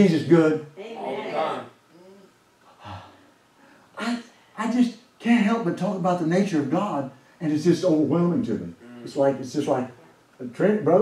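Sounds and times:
man breathing: 2.7 - 4.6.

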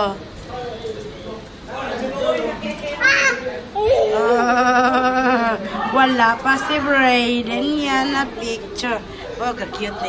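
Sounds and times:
young children's voices: 2.8 - 7.0
high-pitched cry: 3.1 - 5.5.

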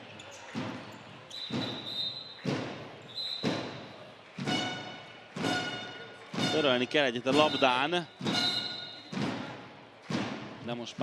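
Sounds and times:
ball bouncing in echoing hall: 0.0 - 11.0.

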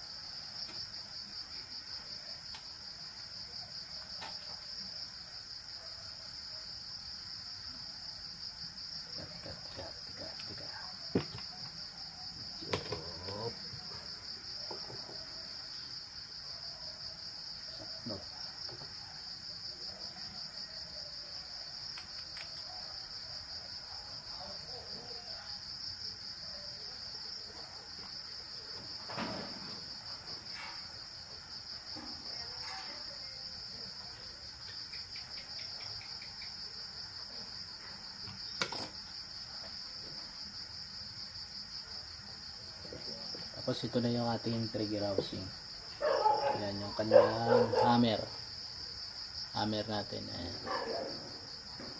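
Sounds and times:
crickets trilling: 0.0 - 51.9.

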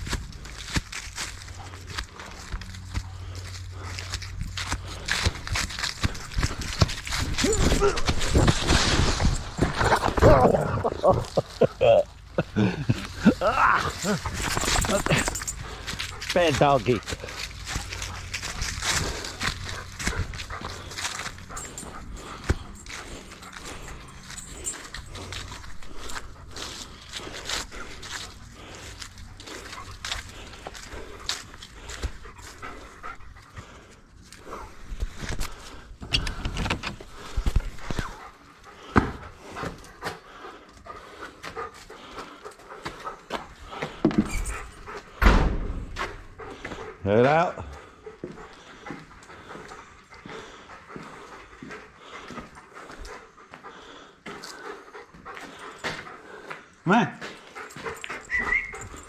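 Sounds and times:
footstep scuffs and clicks: 0.0 - 59.0
dog panting: 0.1 - 8.4, 9.4 - 59.0.

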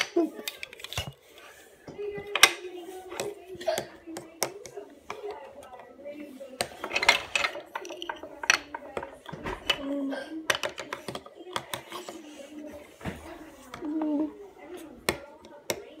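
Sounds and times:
toy bricks clattering on wooden table: 6.6 - 12.3.

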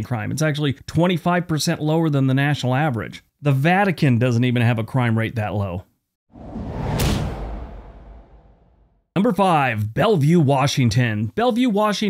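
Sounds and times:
whoosh with sharp hit: 6.3 - 9.0.

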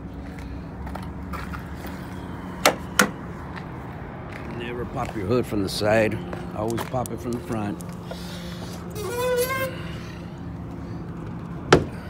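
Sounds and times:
low engine hum: 0.0 - 12.0
hood clunking open: 2.6 - 3.2
hood hinge squeak: 8.8 - 10.3.

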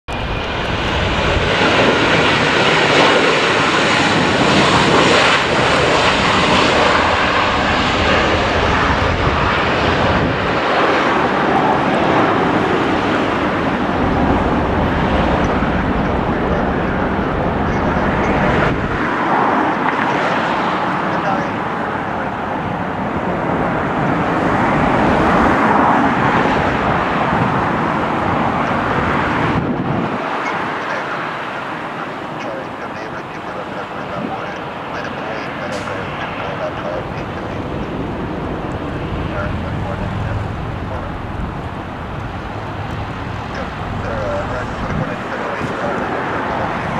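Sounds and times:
jet engines at taxi thrust: 0.1 - 46.9.

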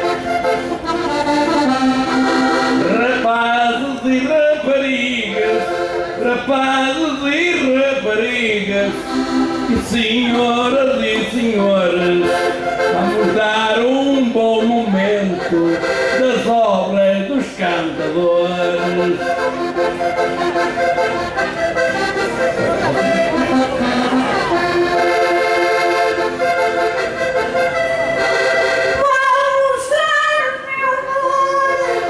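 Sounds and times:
concertina playing: 0.0 - 32.0
person singing: 9.7 - 19.4, 29.0 - 32.0
woman singing: 29.0 - 32.0.

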